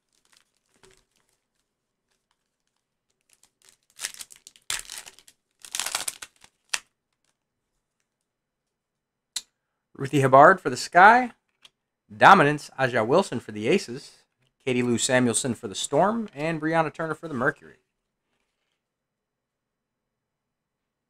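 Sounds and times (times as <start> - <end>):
foil wrappers crinkling and tearing: 0.0 - 7.4.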